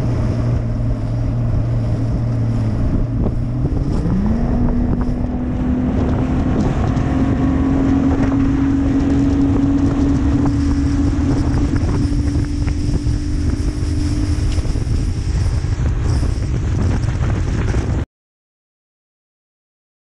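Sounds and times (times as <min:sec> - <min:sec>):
outboard motor running: 0:00.0 - 0:18.0
water rushing along hull: 0:00.0 - 0:18.0
wind buffeting microphone: 0:00.0 - 0:18.0.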